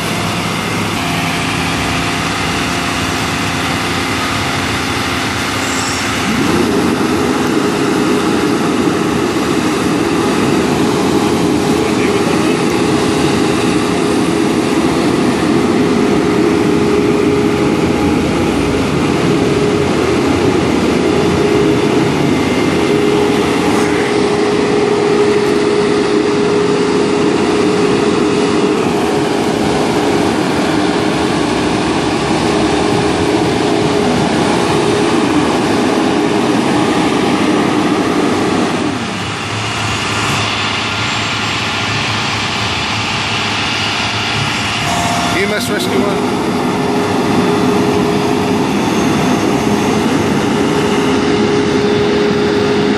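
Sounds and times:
diesel engines idling: 0:00.0 - 0:52.9
steady hum: 0:00.0 - 0:52.9.

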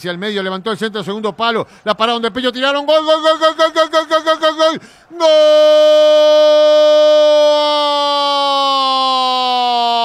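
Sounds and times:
man shouting long goal call: 0:02.9 - 0:10.0.

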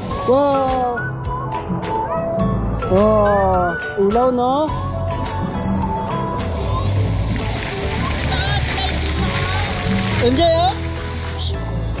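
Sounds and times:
background music: 0:00.0 - 0:12.0
fountain jets spraying water: 0:05.8 - 0:12.0
voices: 0:06.8 - 0:11.7.

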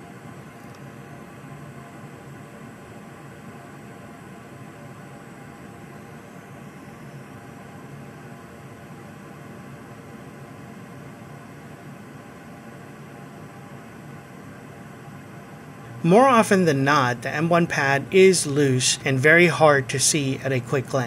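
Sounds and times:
low hum: 0:15.8 - 0:21.0.

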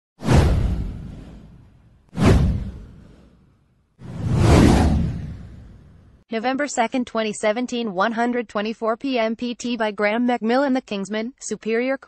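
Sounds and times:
whoosh sound effects: 0:00.2 - 0:06.2.

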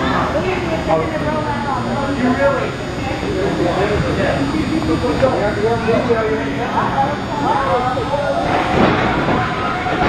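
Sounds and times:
crowd din: 0:00.0 - 0:10.0
indistinct voices talking: 0:00.0 - 0:10.0.

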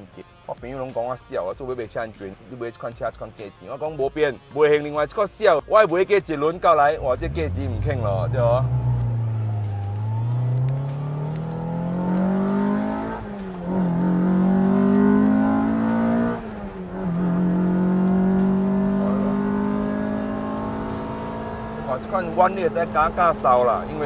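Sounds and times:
car engine accelerating through gears: 0:07.0 - 0:24.0.

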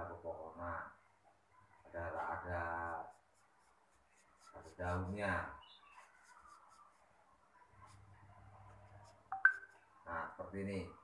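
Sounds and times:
marker pen drawing on paper: 0:01.6 - 0:10.6.

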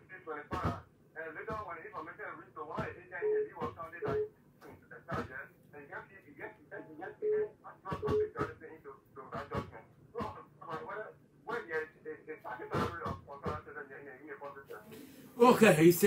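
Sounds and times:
person speaking over telephone line: 0:14.8 - 0:16.0.

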